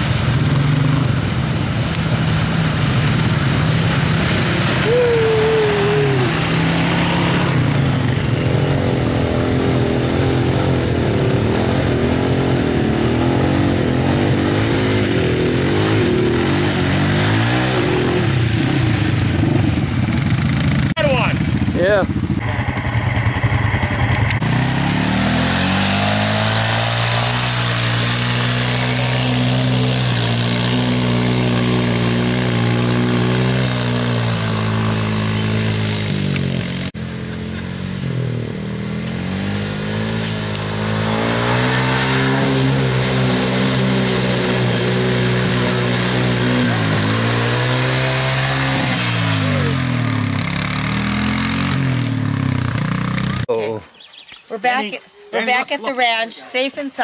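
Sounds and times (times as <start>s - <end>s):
mud and water churning: 0.0s - 20.8s, 24.4s - 37.0s, 39.2s - 53.5s
atv engine revving: 0.0s - 53.7s.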